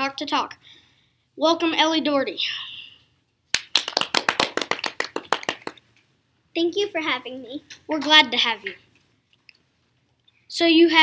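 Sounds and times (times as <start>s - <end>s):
quick sharp hand claps: 3.5s - 5.8s.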